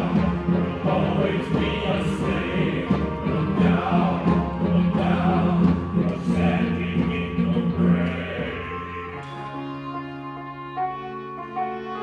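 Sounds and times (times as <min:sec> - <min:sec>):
chorus singing: 0:00.0 - 0:09.8
keyboard orchestral chords: 0:00.0 - 0:12.0.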